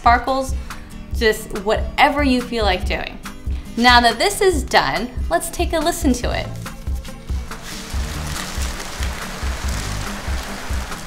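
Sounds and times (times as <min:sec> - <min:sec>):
background music with steady beat: 0:00.0 - 0:11.0
rice trickling through rain stick: 0:07.6 - 0:11.0.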